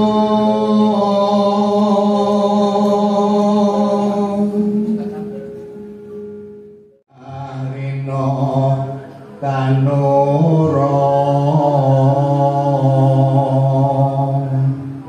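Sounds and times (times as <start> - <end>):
man singing into a microphone: 7.1 - 15.0.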